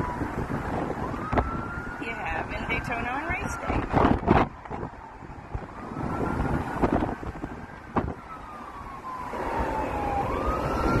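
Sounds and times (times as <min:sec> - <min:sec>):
car road rumble: 0:00.0 - 0:11.0.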